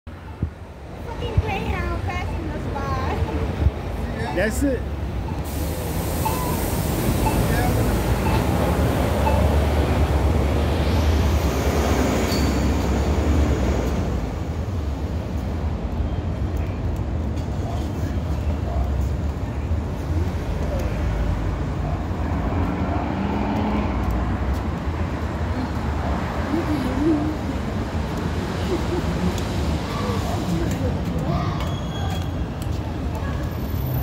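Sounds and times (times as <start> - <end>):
bus engine rumble: 0.1 - 34.0
traffic hum: 0.1 - 34.0.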